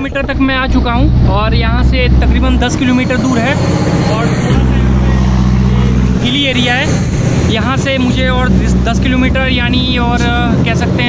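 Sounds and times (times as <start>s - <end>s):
truck engine droning: 0.0s - 11.0s.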